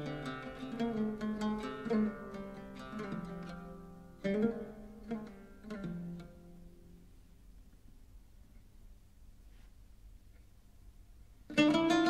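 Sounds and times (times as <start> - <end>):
plucked oud notes: 0.0 - 7.8, 11.4 - 12.0.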